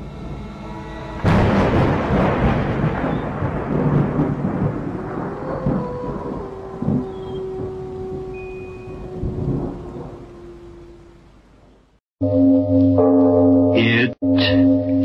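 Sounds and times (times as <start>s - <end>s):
rain: 0.0s - 12.0s
thunder rumbling: 0.0s - 12.0s
low held tone: 5.4s - 11.2s, 12.2s - 15.0s.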